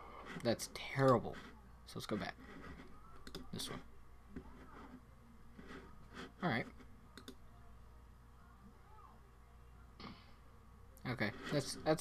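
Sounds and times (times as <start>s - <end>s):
computer mouse clicks: 3.2s - 3.5s, 7.2s - 7.4s.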